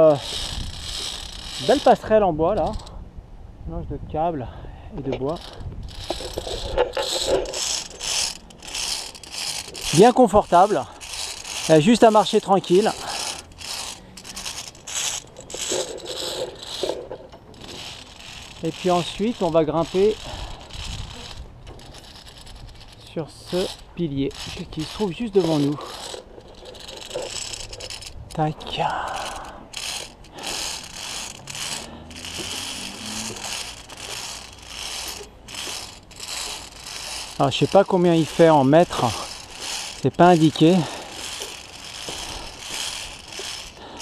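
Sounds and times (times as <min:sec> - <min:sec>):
carabiners scraping steel cable: 0:00.0 - 0:03.0, 0:05.0 - 0:44.0
rustling of gear: 0:00.0 - 0:03.0, 0:05.0 - 0:44.0.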